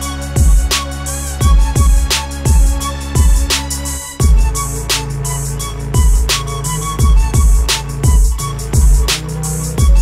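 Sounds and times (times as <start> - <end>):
sharp snare strikes: 3.5 - 3.8.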